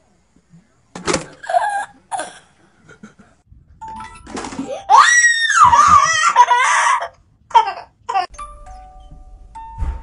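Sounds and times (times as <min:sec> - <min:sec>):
child screaming: 0:04.7 - 0:07.1.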